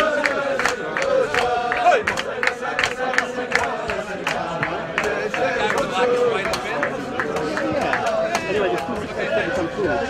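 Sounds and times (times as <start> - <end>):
rhythmic hand clapping: 0.0 - 9.3
men singing together: 0.0 - 10.0.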